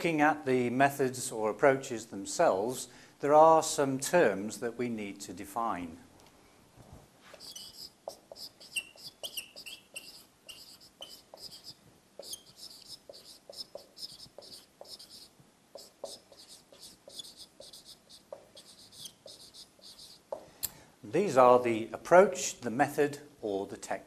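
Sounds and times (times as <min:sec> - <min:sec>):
marker squeaking on whiteboard: 0:07.3 - 0:20.4.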